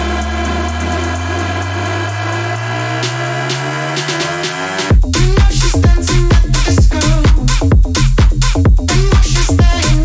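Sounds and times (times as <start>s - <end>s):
sustained synth chord: 0.0s - 5.3s
electronic dance beat: 0.0s - 10.0s
rising bass tone: 0.0s - 10.0s.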